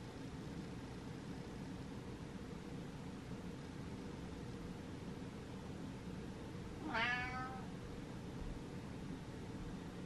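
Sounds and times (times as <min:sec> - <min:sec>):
cat meowing: 0:06.8 - 0:07.7.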